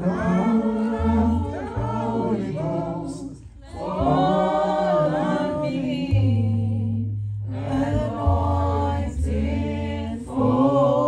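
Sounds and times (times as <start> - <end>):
congregation singing in harmony: 0.0 - 11.0
held low bass note: 0.0 - 11.0.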